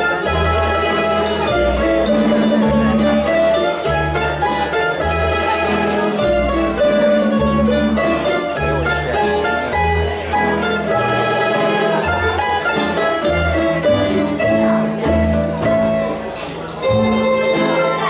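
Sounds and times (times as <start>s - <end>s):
plucked bass line: 0.0s - 18.0s
plucked string melody: 0.0s - 18.0s
strummed chords: 0.0s - 18.0s.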